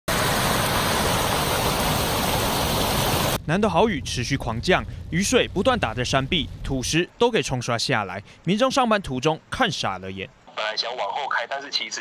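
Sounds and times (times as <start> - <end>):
floodwater rushing over rocks: 0.1 - 3.4.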